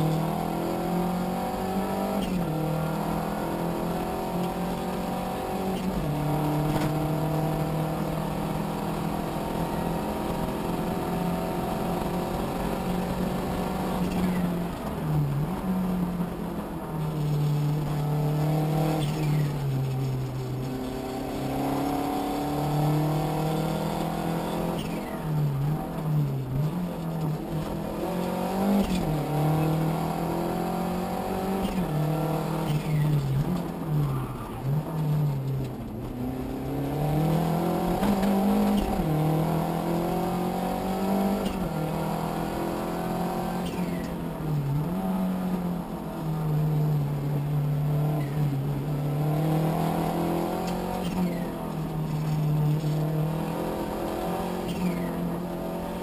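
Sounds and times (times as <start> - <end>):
car engine revving with gear shifts: 0.0 - 56.0.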